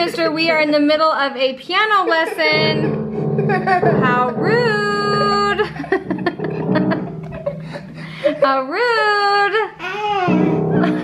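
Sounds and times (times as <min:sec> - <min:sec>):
piano scattered notes: 0:00.0 - 0:11.0.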